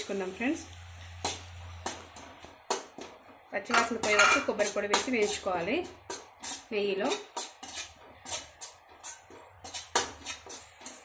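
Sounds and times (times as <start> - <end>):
metal spoon scraping a pan: 0.9 - 11.0.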